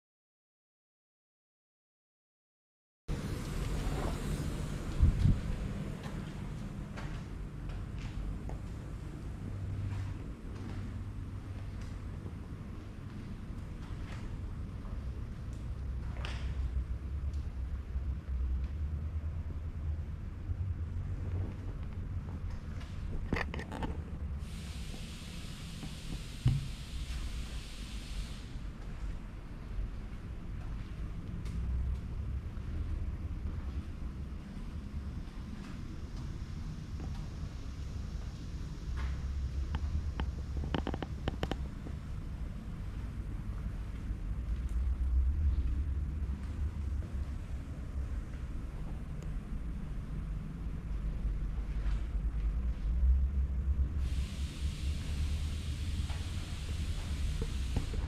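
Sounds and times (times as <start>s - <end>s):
ventilation low rumble: 3.1s - 58.0s
burst of hiss: 24.4s - 28.8s, 54.0s - 58.0s
thump: 26.4s - 26.7s.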